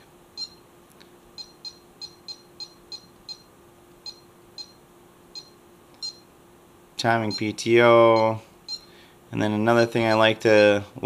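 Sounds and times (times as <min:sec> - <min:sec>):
short high-pitched beeps: 0:00.4 - 0:00.6, 0:01.4 - 0:04.8, 0:05.4 - 0:06.3, 0:07.3 - 0:07.5, 0:08.1 - 0:08.9.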